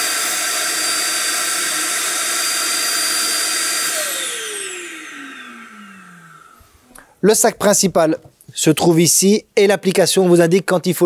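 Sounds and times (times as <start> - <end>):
vacuum suction motor whine: 0.0 - 6.9.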